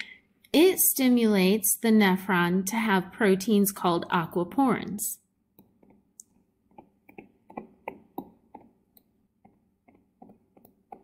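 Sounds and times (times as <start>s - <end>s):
stylus tapping on tablet screen: 5.5s - 11.0s.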